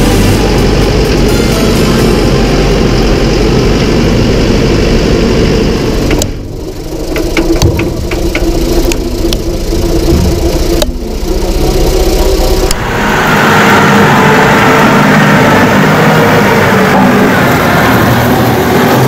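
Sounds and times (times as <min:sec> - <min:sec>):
tractor diesel engine running: 0:00.0 - 0:19.0
sharp ticks: 0:07.1 - 0:12.8.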